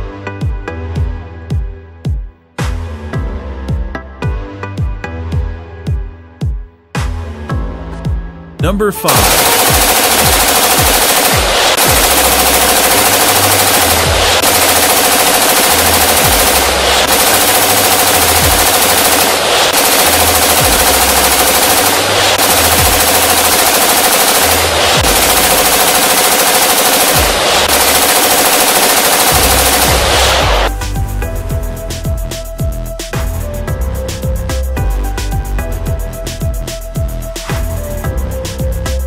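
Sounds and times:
machine-gun automatic fire: 0:09.0 - 0:30.7.

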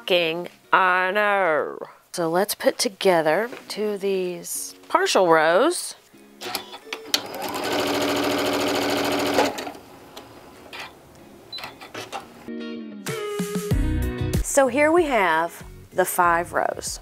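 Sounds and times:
background music: 0:00.0 - 0:17.0
sewing machine stitching: 0:06.5 - 0:09.8.

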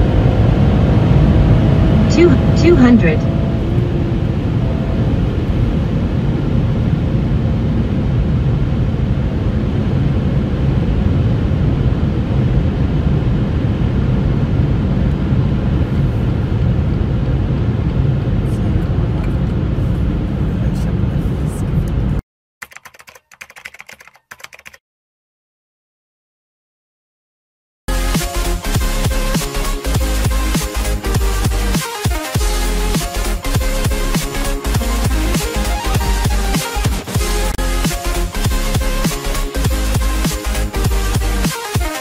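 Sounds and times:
road and wind noise in car: 0:00.0 - 0:22.2.

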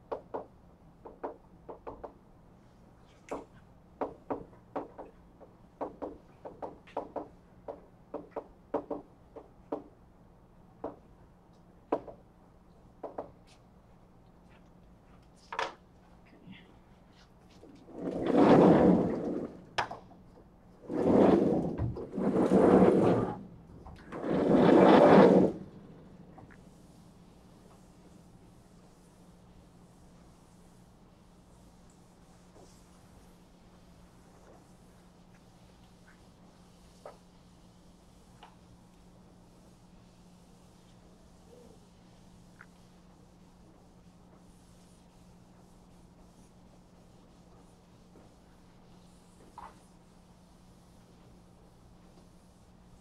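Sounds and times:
chalkboard panels rumbling on tracks: 0:17.8 - 0:20.2, 0:20.8 - 0:26.9.

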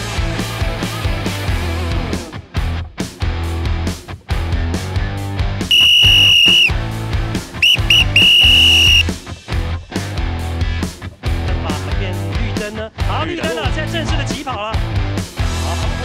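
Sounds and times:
high-pitched whistle blasts: 0:05.7 - 0:06.7, 0:07.6 - 0:09.1.

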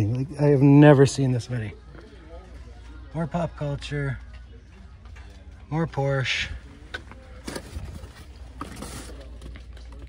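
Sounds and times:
cardboard cases scraping and clicking: 0:07.4 - 0:09.6.

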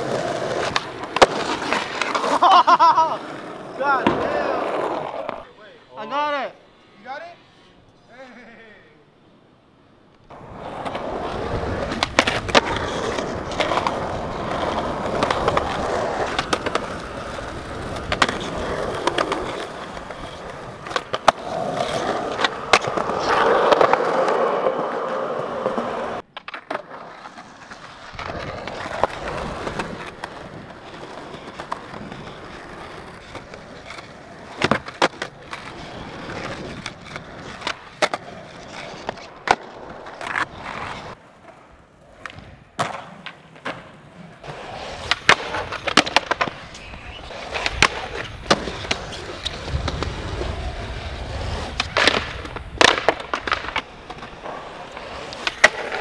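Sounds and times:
skateboard clacks: 0:00.0 - 0:05.4, 0:10.2 - 0:56.0
skateboard wheels rolling on concrete: 0:00.0 - 0:56.0.

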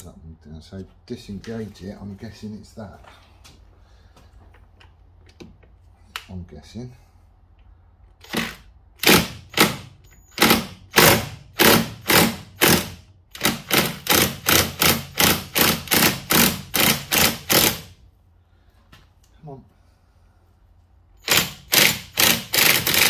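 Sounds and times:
cordless impact wrench bursts: 0:08.2 - 0:18.0, 0:21.2 - 0:23.0.

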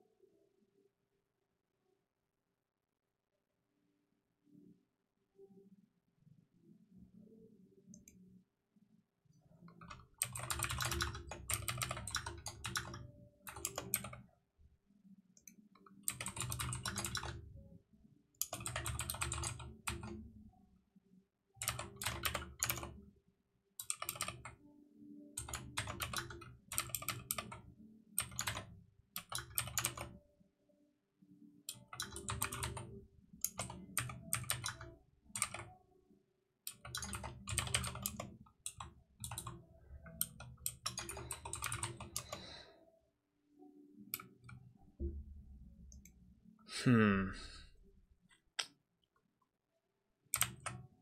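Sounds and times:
computer keyboard typing: 0:09.7 - 0:14.2, 0:15.8 - 0:17.5, 0:18.4 - 0:20.2, 0:21.6 - 0:23.0, 0:23.8 - 0:24.6, 0:25.3 - 0:30.2, 0:31.7 - 0:35.7, 0:36.7 - 0:42.6, 0:44.1 - 0:44.6, 0:50.3 - 0:50.8.

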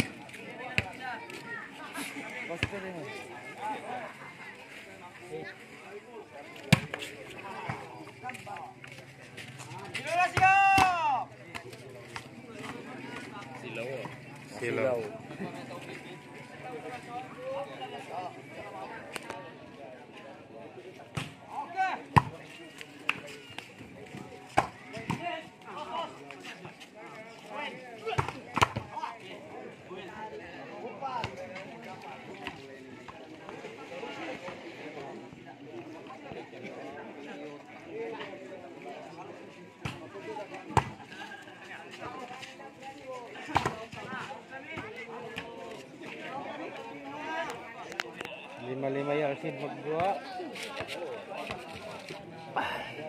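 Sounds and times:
people chattering and calling: 0:00.0 - 0:53.0
people shouting: 0:10.1 - 0:11.2.

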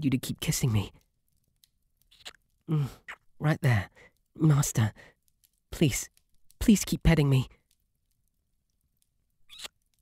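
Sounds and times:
wet kissing sound: 0:02.1 - 0:02.4, 0:09.5 - 0:09.8.

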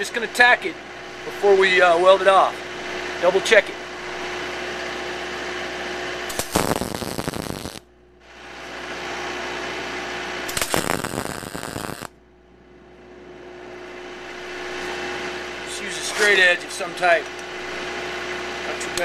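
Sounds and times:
steady background hum: 0:00.0 - 0:19.0
welding arc crackling: 0:06.3 - 0:07.9, 0:10.4 - 0:12.2.

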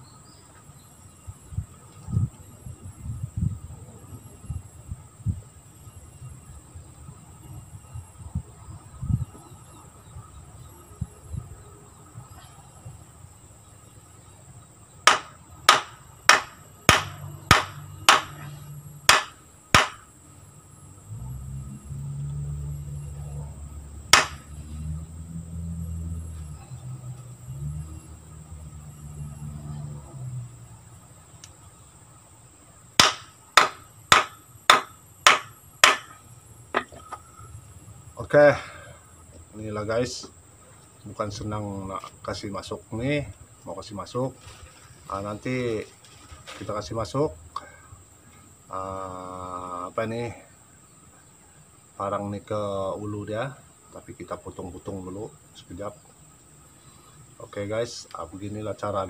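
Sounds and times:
knocks of hammering tang into handle: 0:15.1 - 0:18.4, 0:19.1 - 0:20.0, 0:24.1 - 0:24.4, 0:33.0 - 0:36.2.

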